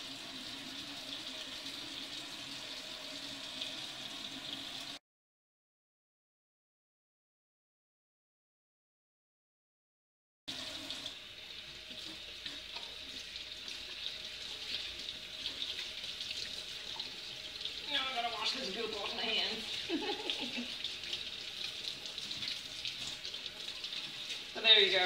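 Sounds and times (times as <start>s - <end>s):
faucet running into metal sink: 0.0s - 5.0s, 10.5s - 25.0s.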